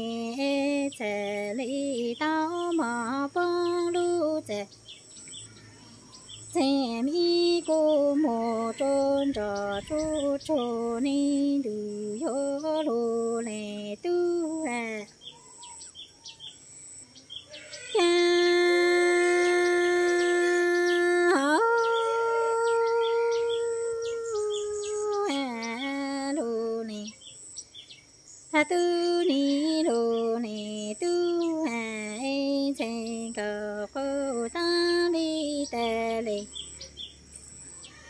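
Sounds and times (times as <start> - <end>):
woman singing unaccompanied: 0.0 - 5.0, 6.2 - 15.4, 17.8 - 27.3, 28.5 - 36.9.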